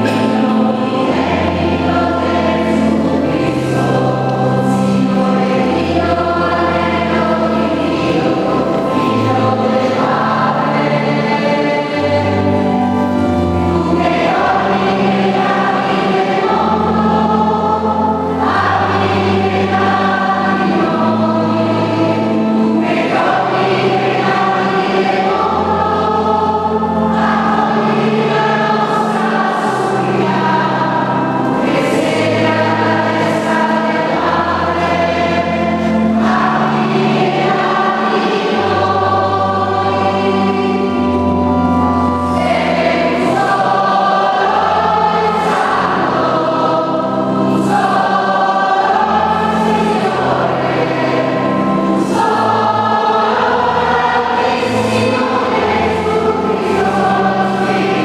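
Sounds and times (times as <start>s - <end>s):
choir singing a chant: 0.0s - 58.0s
long held bass notes: 0.0s - 58.0s.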